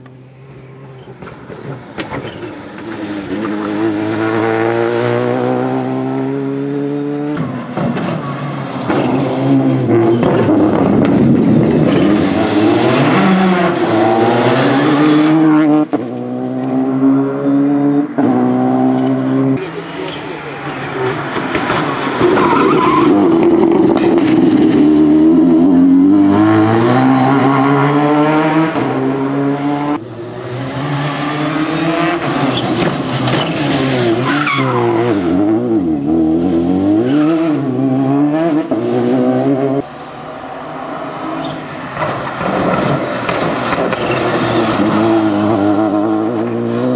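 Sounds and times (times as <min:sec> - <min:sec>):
rally car engine revving hard: 0:02.9 - 0:07.7, 0:08.7 - 0:39.8.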